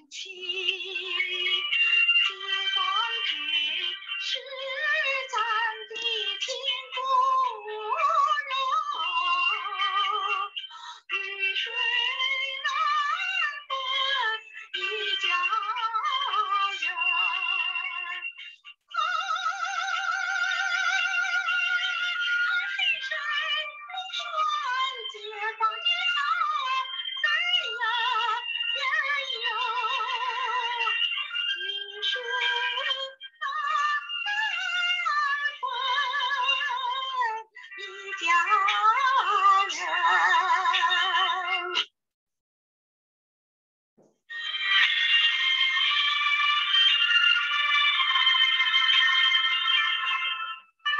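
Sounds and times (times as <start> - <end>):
woman singing with vibrato: 0.0 - 41.8, 44.3 - 50.9.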